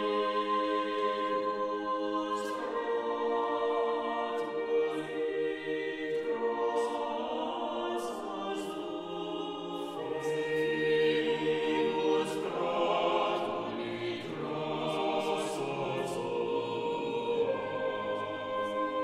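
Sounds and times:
unaccompanied choir singing: 0.0 - 19.0.

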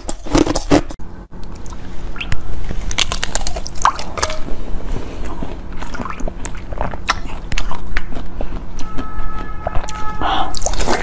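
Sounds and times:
steady low hum: 0.0 - 11.0
ice being chewed: 1.4 - 11.0.

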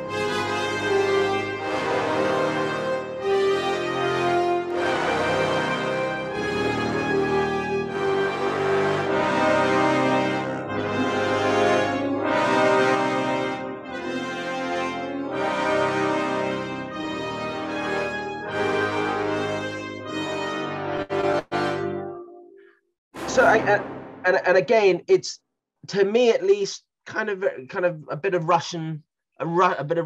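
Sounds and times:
brass section playing chords: 0.0 - 24.4.

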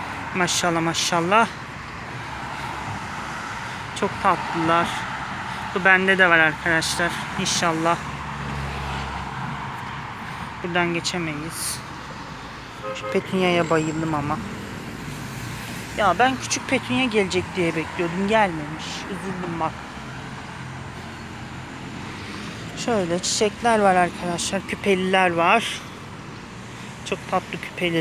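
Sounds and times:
vehicle engine rumble: 0.0 - 28.0.

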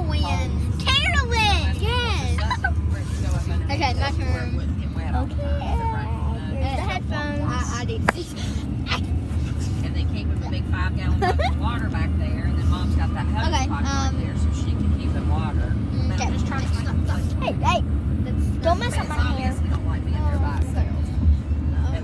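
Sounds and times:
children's voices: 0.0 - 2.7.

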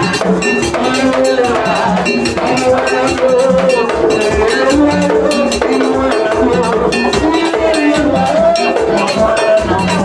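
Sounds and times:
percussion beat: 0.0 - 10.0
voices singing together: 0.0 - 10.0.

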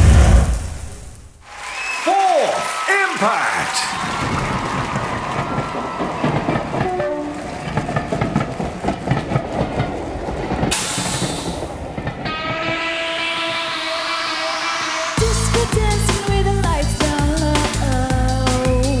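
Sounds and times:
train rumbling over rails: 3.9 - 18.5
burst of hiss: 10.7 - 11.7
rising whine: 11.2 - 15.2.

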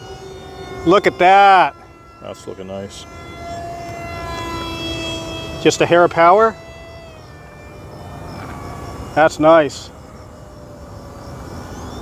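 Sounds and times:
faint electric motor whine: 0.0 - 12.0
outdoor background noise: 0.0 - 12.0.

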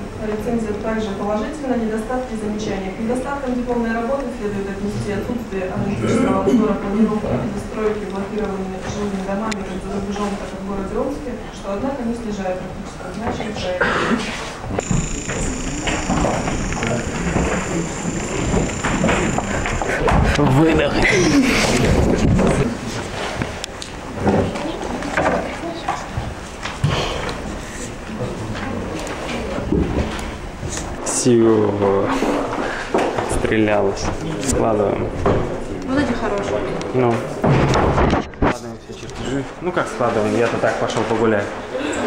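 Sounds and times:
thin high whine: 14.7 - 20.8.

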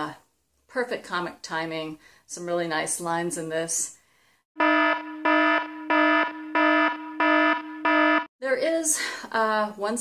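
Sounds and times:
pulsing alarm buzzer: 4.6 - 8.3.

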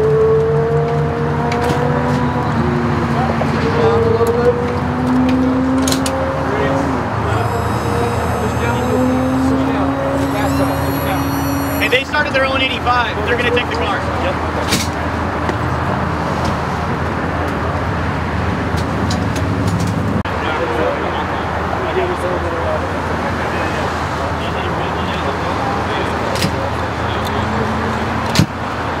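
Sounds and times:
indistinct voices: 6.5 - 14.3.

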